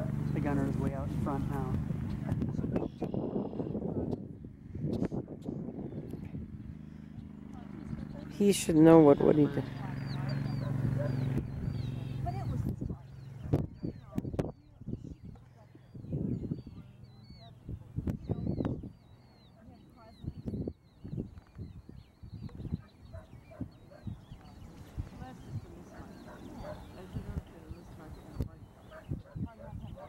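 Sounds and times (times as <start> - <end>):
birds chirping: 0.0 - 30.0
steady low hum: 0.0 - 30.0
wind rumbling on microphone: 0.0 - 30.0.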